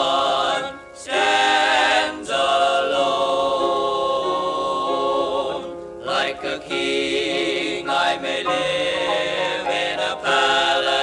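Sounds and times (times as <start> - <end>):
male quartet singing in harmony: 0.0 - 11.0.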